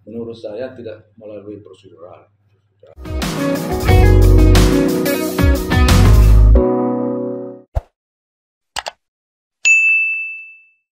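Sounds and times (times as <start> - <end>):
bright bell-like ding: 9.7 - 10.8.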